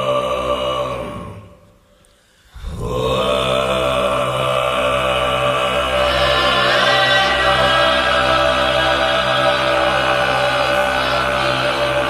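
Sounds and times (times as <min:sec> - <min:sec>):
deep chanting voices drone: 0:00.0 - 0:12.0.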